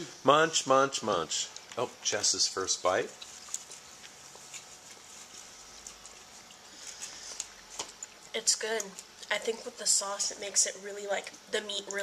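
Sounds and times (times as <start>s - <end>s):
person chewing food: 3.1s - 9.2s.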